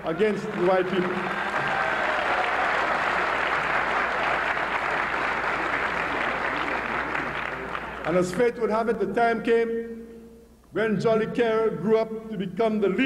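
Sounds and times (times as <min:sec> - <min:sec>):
audience applauding: 0:00.0 - 0:08.3.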